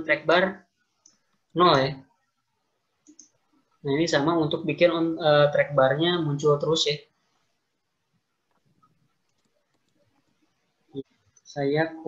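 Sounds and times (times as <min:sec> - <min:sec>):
person speaking: 0:00.0 - 0:00.7, 0:01.5 - 0:02.1, 0:03.1 - 0:07.1.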